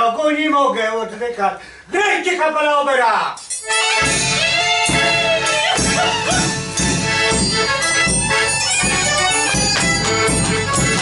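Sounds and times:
drum with cymbal beating: 3.4s - 11.0s
accordion: 3.6s - 11.0s
fiddle melody: 3.6s - 11.0s.

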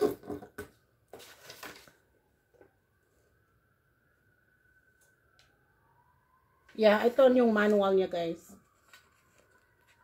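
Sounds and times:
paper rustling: 1.1s - 2.1s, 8.6s - 10.0s.

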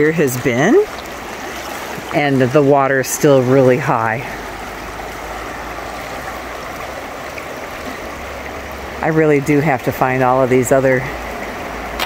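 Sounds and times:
river current rushing: 0.0s - 12.0s.

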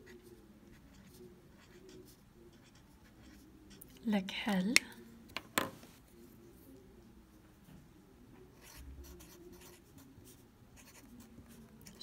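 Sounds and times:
pen scratching on paper: 0.0s - 4.0s, 8.6s - 12.0s.

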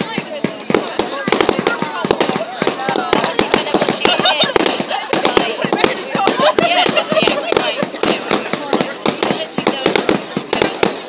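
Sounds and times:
crowd talking: 0.0s - 11.0s
fireworks bangs and crackles: 0.0s - 11.0s.

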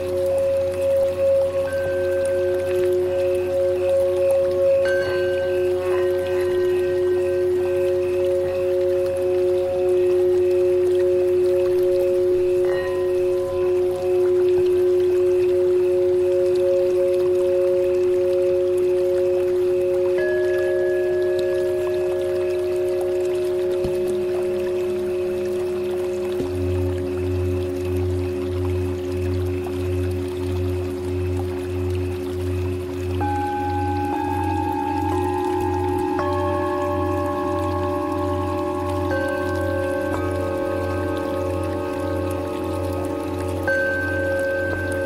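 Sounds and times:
low pulsing drone: 0.0s - 45.0s
singing bowls ringing: 0.0s - 45.0s.

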